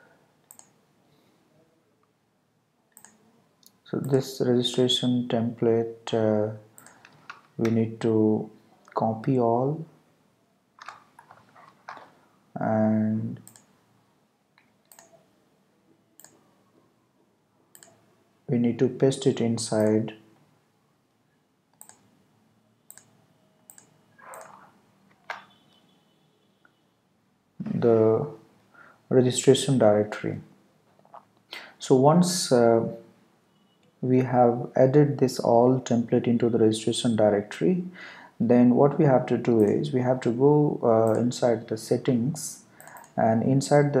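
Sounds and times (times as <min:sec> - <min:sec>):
computer mouse clicks: 0:00.4 - 0:00.8, 0:02.9 - 0:04.2, 0:06.8 - 0:07.8, 0:10.8 - 0:12.1, 0:13.4 - 0:13.7, 0:14.6 - 0:15.2, 0:16.2 - 0:16.4, 0:17.7 - 0:18.0, 0:21.7 - 0:22.1, 0:22.9 - 0:25.5, 0:42.8 - 0:43.2
mouse double-clicks: 0:00.5 - 0:00.8, 0:03.0 - 0:03.2, 0:14.9 - 0:15.2, 0:16.2 - 0:16.4, 0:17.7 - 0:18.0, 0:21.8 - 0:22.1, 0:22.9 - 0:23.1, 0:23.7 - 0:24.6, 0:42.8 - 0:43.2.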